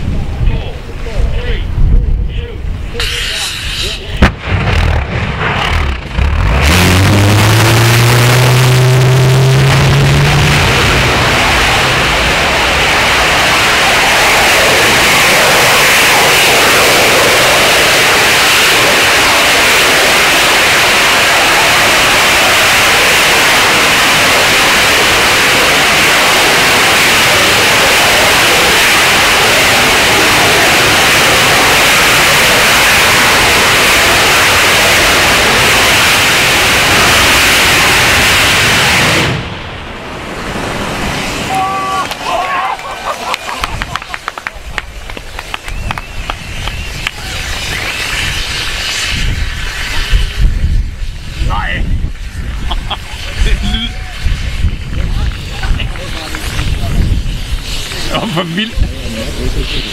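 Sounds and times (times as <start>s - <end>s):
rocket engine roaring: 0.0s - 59.9s
sharp ignition crack: 2.8s - 59.9s.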